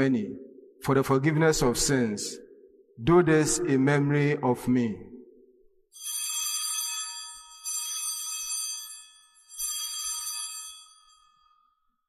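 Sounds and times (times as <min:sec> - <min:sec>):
altar bells chiming: 0:06.0 - 0:11.9.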